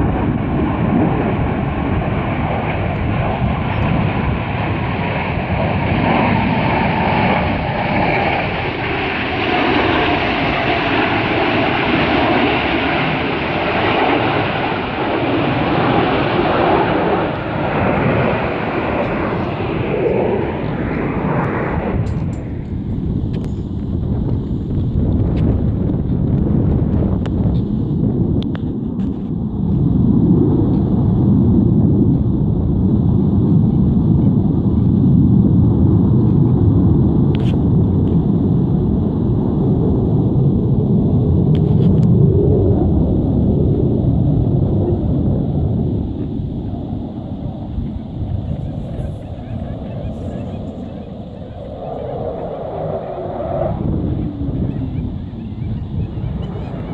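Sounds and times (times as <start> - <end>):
jets roaring overhead: 0.0 - 56.9.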